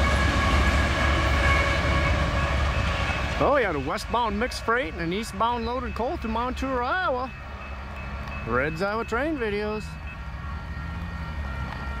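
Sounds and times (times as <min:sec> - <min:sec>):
diesel locomotive engine rumble: 0:00.0 - 0:12.0.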